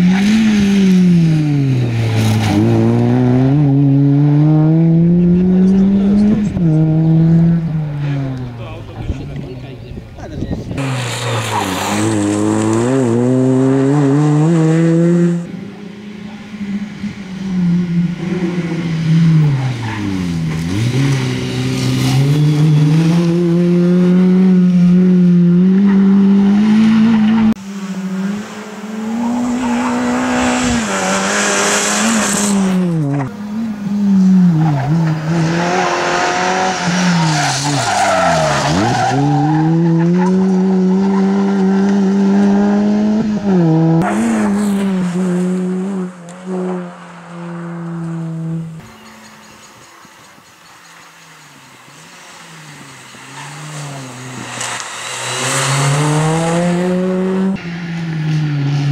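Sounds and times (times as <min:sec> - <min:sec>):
rally car engine revving: 0:00.0 - 0:49.8, 0:50.6 - 0:58.9
tyres skidding on gravel: 0:10.8 - 0:13.3.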